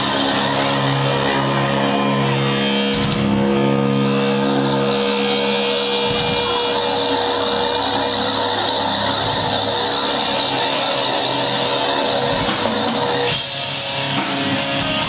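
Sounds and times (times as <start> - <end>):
electric guitar sustained notes: 0.0 - 15.0
live rock band playing: 12.1 - 15.0.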